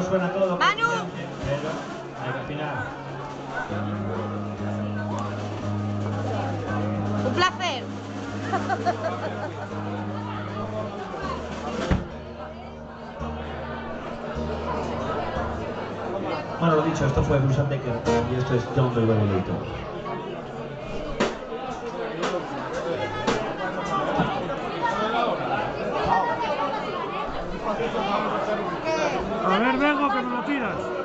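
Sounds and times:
people chattering: 0.0s - 31.0s
voices in a bar: 0.0s - 31.0s
sustained guitar notes: 2.3s - 20.8s.

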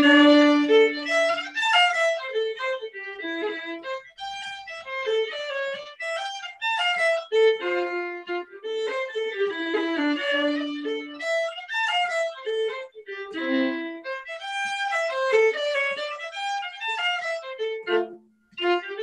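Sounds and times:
solo violin fiddle tune: 0.0s - 19.0s.

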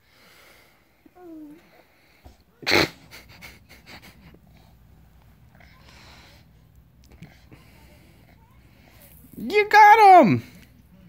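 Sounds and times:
baby whimpering: 1.0s - 1.9s
faint breaths and clicks: 4.3s - 9.4s.

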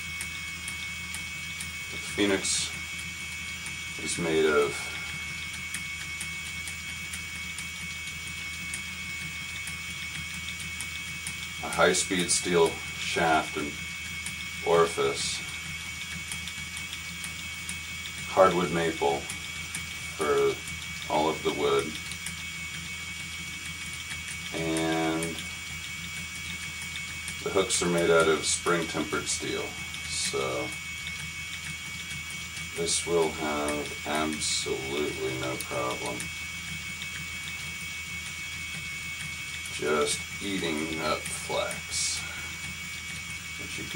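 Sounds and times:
electric spinning wheel humming: 0.0s - 43.9s.

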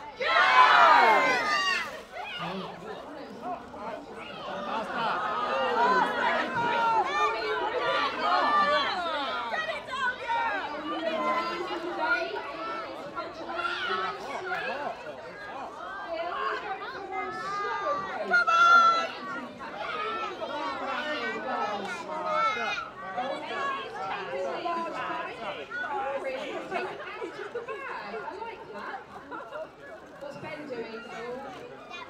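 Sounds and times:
crowd chattering outdoors: 0.0s - 32.0s.

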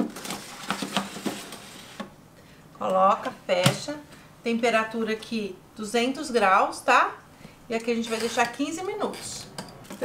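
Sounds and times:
foil tray crinkling and scraping: 0.0s - 2.0s.

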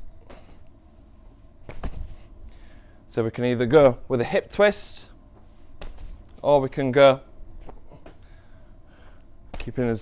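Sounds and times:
ball slapping into hands: 1.6s - 2.2s, 5.8s - 6.4s, 9.5s - 9.8s.

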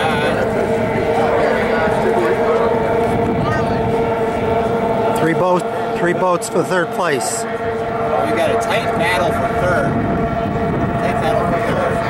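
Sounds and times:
outboard motors whining: 0.0s - 12.0s
man talking: 5.1s - 7.5s.

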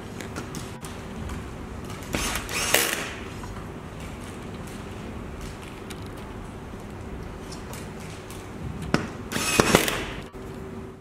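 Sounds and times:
faint steady hum: 0.0s - 11.0s
cordless screwdriver driving screw: 2.2s - 3.1s, 9.3s - 10.0s.

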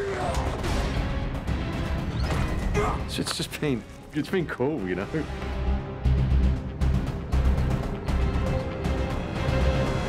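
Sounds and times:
action movie music: 0.0s - 10.0s.

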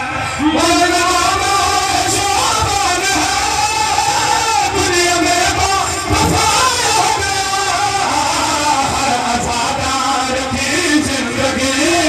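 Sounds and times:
low thumping beats: 0.4s - 12.0s.

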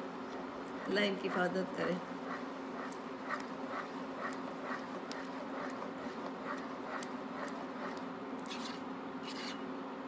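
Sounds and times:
spatula stirring thick paste: 2.2s - 9.6s.

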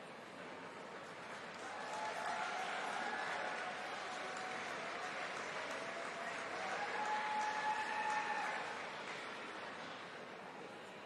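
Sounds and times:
murmur of indoor crowd: 0.0s - 11.0s.

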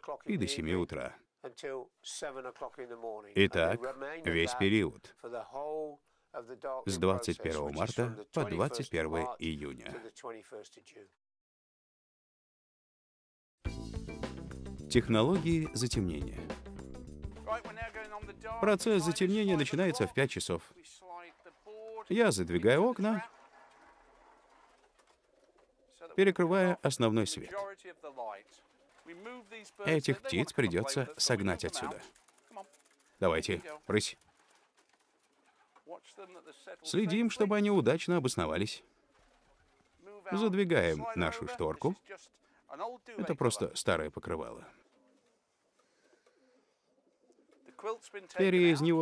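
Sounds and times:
faint pigeons cooing: 31.6s - 35.9s, 44.7s - 48.7s.

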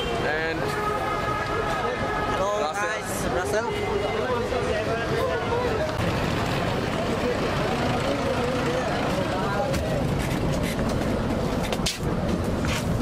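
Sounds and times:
people's voices: 0.0s - 11.0s
bus engine rumbling: 0.0s - 13.0s.

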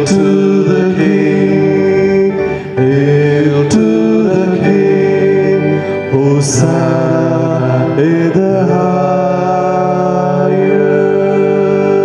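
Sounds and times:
slow hymn singing: 0.0s - 12.0s.

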